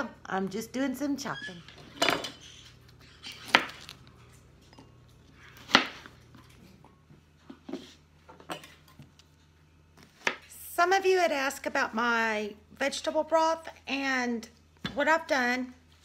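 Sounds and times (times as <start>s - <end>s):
knife chopping on cutting board: 5.6s - 6.1s.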